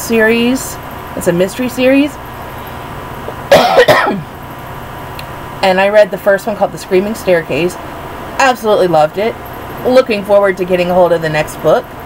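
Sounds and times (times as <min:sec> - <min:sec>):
woman coughing: 0:03.5 - 0:04.3.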